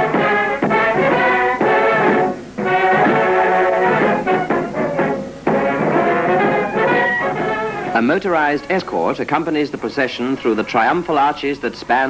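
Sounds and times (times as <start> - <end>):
brass band playing held notes: 0.0 - 12.0.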